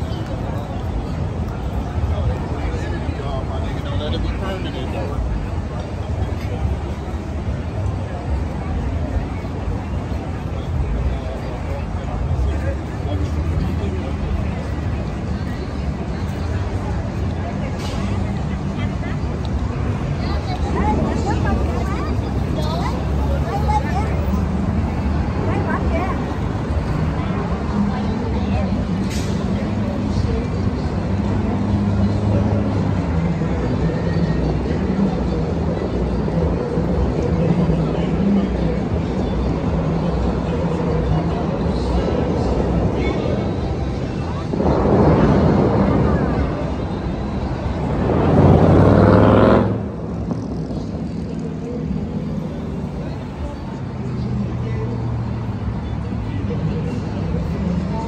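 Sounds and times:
cars passing: 0.0s - 58.0s
crowd chatter: 0.0s - 58.0s
street traffic: 0.0s - 58.0s
car engine revving: 47.6s - 51.4s.

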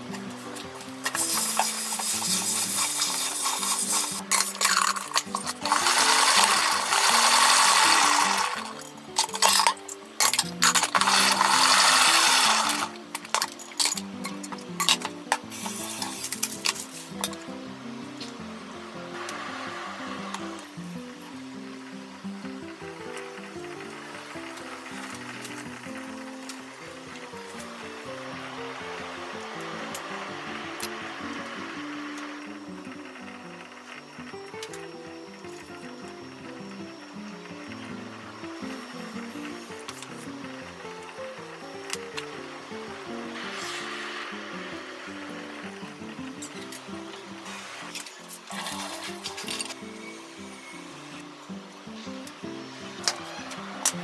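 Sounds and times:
background music: 0.0s - 54.0s
salad spinner whirring: 0.0s - 54.0s.

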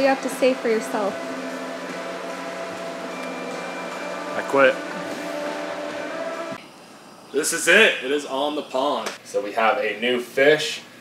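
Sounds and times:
steady hum with hiss: 0.0s - 11.0s.

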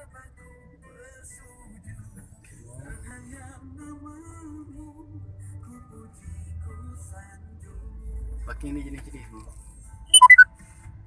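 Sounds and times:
music with melody: 0.0s - 11.0s.

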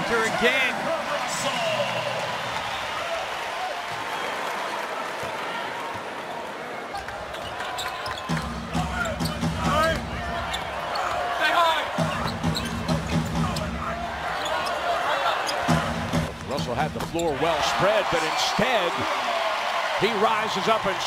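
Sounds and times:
crowd noise: 0.0s - 21.0s
sneakers squeaking: 6.9s - 11.4s, 12.0s - 15.9s.

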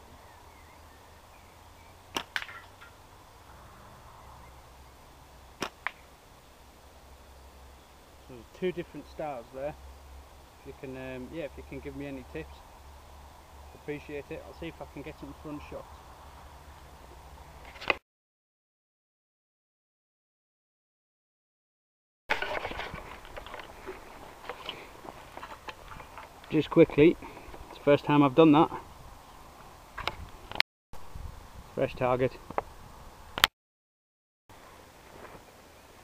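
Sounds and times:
slingshot rubber bands snapping: 2.1s - 2.6s, 5.6s - 6.0s
wind rumbling on microphone: 28.8s - 33.2s.

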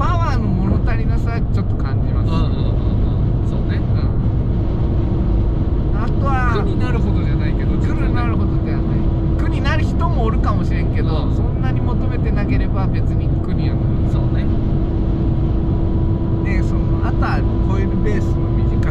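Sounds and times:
car engine and road rumble: 0.0s - 18.9s
steady hum: 0.0s - 18.9s.

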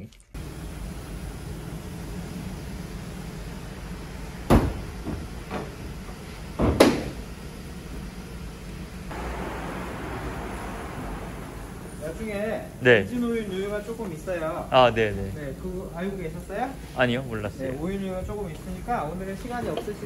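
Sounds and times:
steady hiss: 0.4s - 20.0s
loud knocks: 4.5s - 5.7s, 6.6s - 7.2s
low steady hum: 7.0s - 20.0s.

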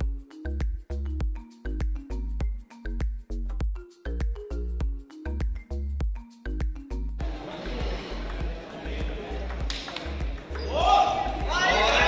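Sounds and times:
music with bass beat: 0.0s - 11.6s
table tennis ball clicking: 9.3s - 10.7s.

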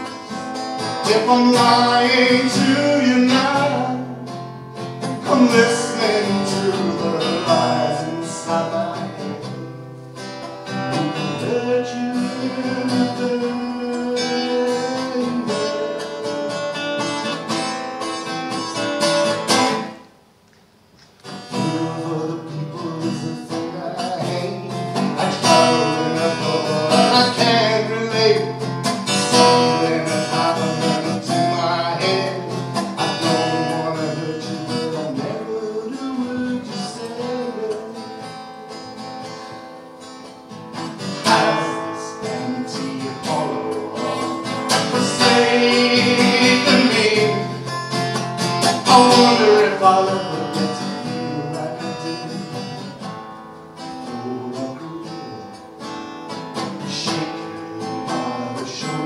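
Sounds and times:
acoustic guitar playing: 0.0s - 59.0s.

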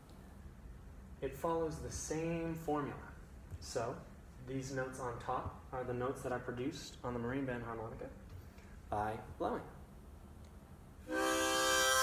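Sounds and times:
harmonica chord: 11.0s - 12.0s.

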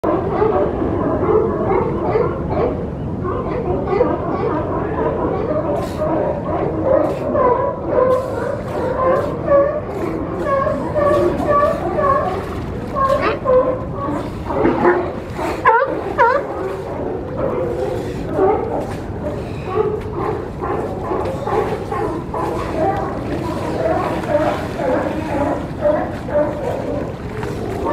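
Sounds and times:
sea lions barking: 0.1s - 27.9s.

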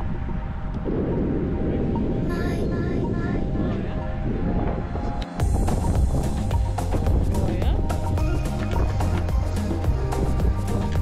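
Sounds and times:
background music: 0.0s - 11.0s
steady low rumble: 0.0s - 11.0s.

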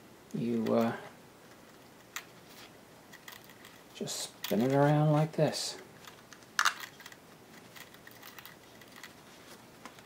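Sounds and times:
wire being twisted by hand: 6.0s - 10.0s.

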